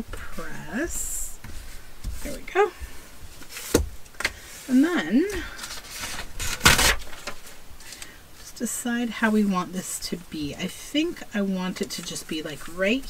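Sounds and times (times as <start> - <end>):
person humming: 4.7 - 5.6
paper sliding rustle: 5.6 - 7.6.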